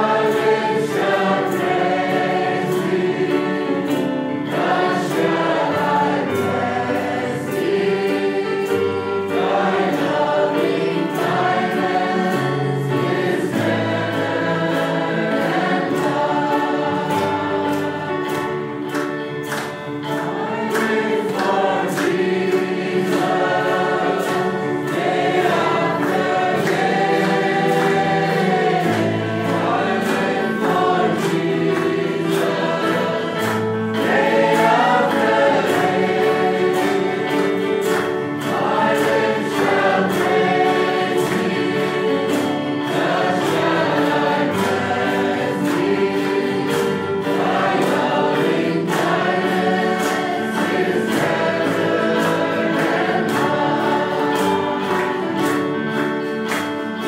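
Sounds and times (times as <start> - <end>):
choir singing: 0.0 - 57.0.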